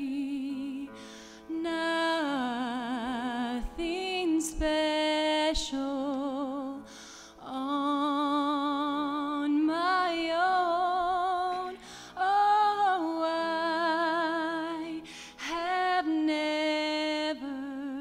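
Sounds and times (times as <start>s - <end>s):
woman singing slow song: 0.0s - 18.0s.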